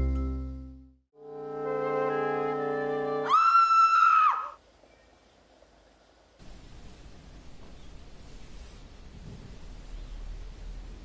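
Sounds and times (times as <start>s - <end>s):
held high musical note: 1.2s - 3.3s.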